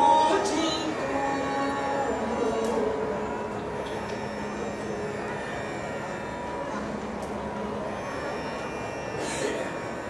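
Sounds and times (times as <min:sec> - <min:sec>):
vocal and violin music over drone: 0:00.0 - 0:10.0.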